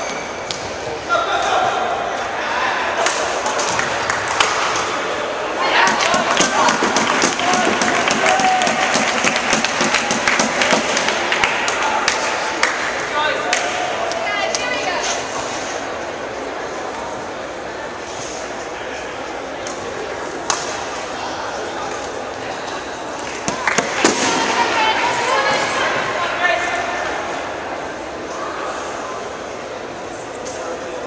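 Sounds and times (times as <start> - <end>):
crowd murmur echoing: 0.0 - 31.0
hand-clapping: 5.9 - 12.8.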